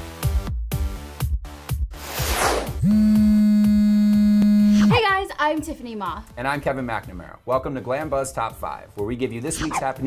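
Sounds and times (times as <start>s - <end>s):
synthesized buzz tone: 2.8s - 5.0s
faint electronic beat: 2.9s - 5.3s.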